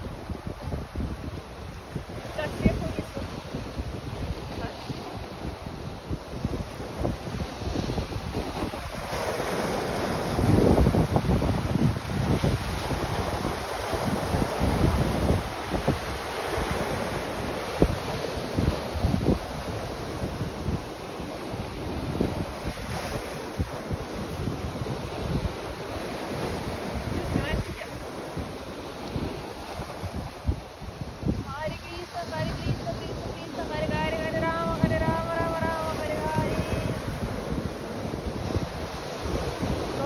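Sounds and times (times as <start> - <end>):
sea waves breaking on rocks: 0.0 - 40.0
wind buffeting microphone: 0.0 - 40.0.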